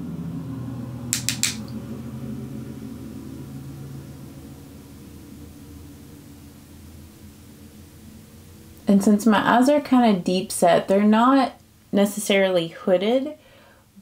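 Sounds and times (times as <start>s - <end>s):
low steady hum: 0.0s - 14.0s
sharp clicks: 1.2s - 1.7s.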